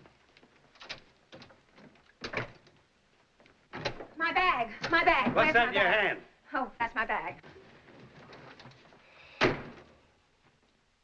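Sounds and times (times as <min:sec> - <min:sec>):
door slamming shut: 0:09.3 - 0:09.9.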